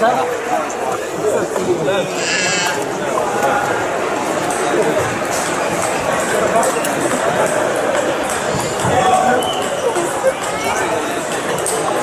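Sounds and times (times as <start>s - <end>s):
voices chattering in a hall: 0.0s - 12.0s.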